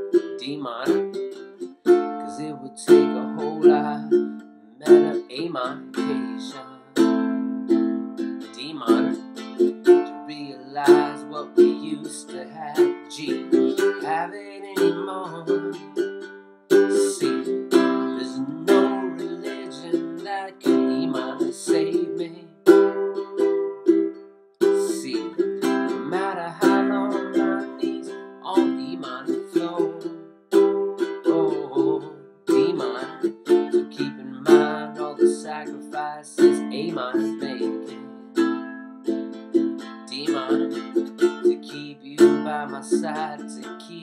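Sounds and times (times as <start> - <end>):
man singing: 0.0 - 7.3, 8.2 - 16.1, 16.7 - 23.0, 24.6 - 38.6, 39.6 - 44.0
ukulele strumming chords: 0.0 - 44.0.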